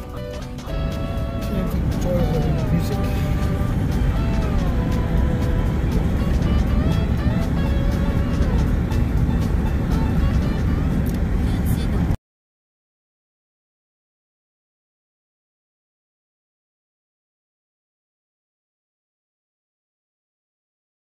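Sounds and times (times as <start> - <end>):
car road and engine rumble: 0.0 - 12.2
music with gliding voice: 0.0 - 12.2.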